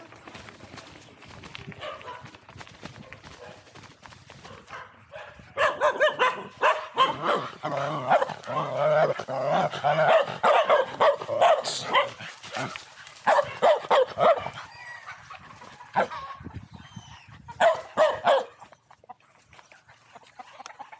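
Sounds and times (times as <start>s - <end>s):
dogs barking: 1.7s - 3.8s, 4.4s - 19.3s.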